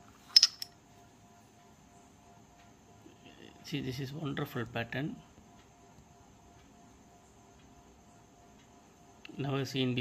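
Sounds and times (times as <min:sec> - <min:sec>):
faint steady hum: 0:00.0 - 0:10.0
shells clicking together: 0:00.4 - 0:00.7.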